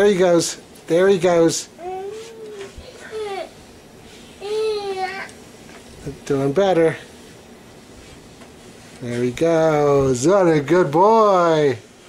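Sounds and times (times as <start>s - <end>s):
treadmill motor and belt running: 0.0s - 1.8s, 4.6s - 12.0s.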